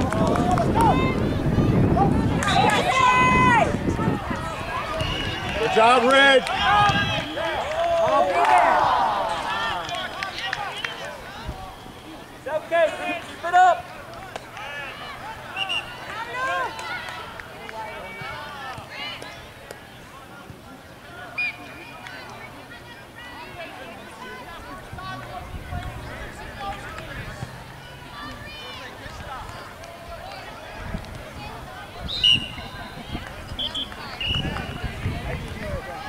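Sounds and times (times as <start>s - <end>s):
voices shouting: 0.0s - 19.2s, 21.2s - 36.0s
background chatter: 0.0s - 36.0s.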